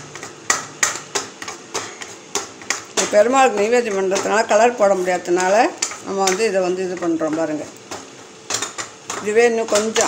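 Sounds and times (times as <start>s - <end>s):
woman talking: 3.0s - 7.8s, 9.2s - 10.0s.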